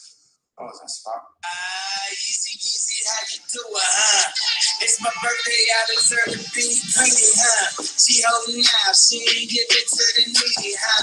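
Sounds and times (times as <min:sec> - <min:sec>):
recorded song with sung vocal: 0:01.4 - 0:11.0.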